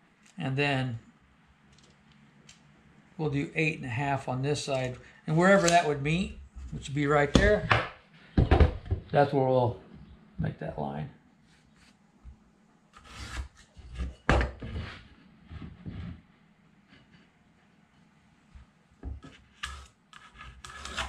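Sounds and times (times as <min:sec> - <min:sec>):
level sliding and knocking on wood: 0:13.1 - 0:16.3
pencil scratching lines: 0:19.2 - 0:21.0.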